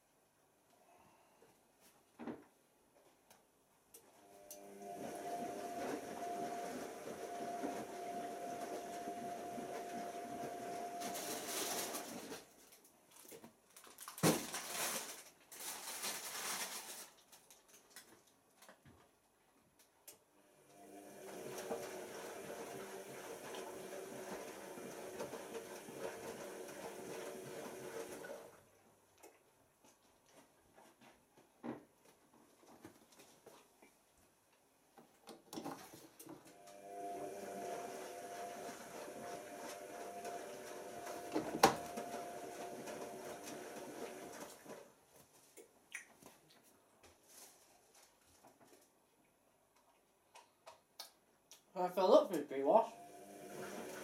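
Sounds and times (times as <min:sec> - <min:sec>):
washing machine filling with water: 0:20.7 - 0:28.6, 0:36.6 - 0:44.6, 0:53.0 - 0:54.0.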